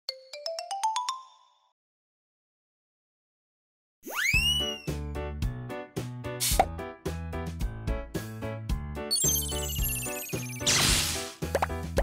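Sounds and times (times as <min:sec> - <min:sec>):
bell-like logo jingle: 0:09.1 - 0:10.6.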